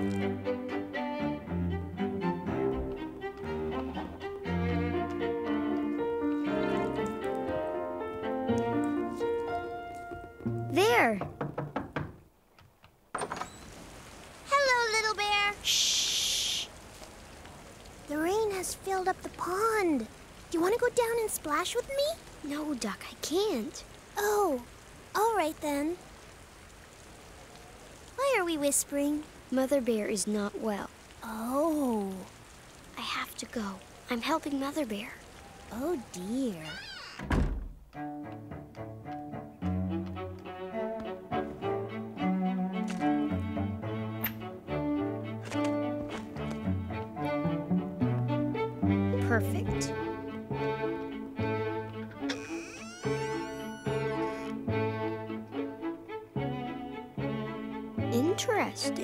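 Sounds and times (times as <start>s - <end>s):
low string notes underscore: 0.0s - 11.4s, 37.9s - 59.0s
knocking on wooden door: 10.4s - 12.2s
wooden door shutting thud: 11.1s - 12.2s, 13.1s - 13.7s, 36.9s - 37.9s.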